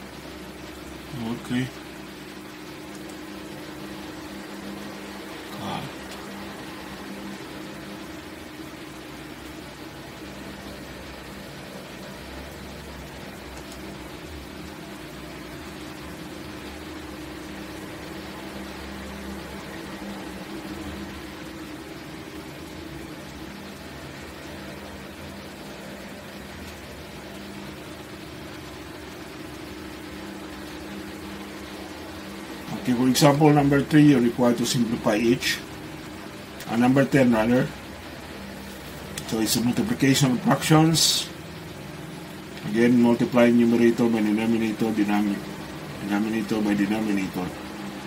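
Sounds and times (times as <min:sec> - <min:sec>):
even hiss: 0:00.0 - 0:48.0
steady low hum: 0:00.0 - 0:48.0.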